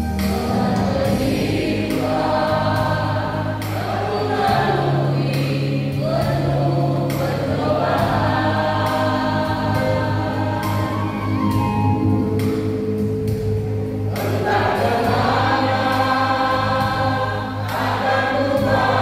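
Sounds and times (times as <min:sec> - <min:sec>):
choir singing a hymn: 0:00.0 - 0:19.0
sustained low accompanying notes: 0:00.0 - 0:19.0.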